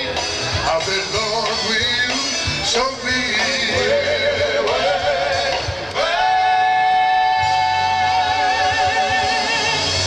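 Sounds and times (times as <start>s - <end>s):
band playing: 0.0s - 10.0s.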